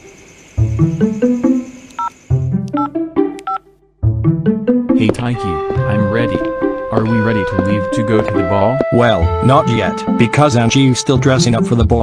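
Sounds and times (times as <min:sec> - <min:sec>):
background music: 0:00.6 - 0:12.0
phone keypad touch-tone beeps: 0:02.0 - 0:02.2, 0:02.8 - 0:03.6.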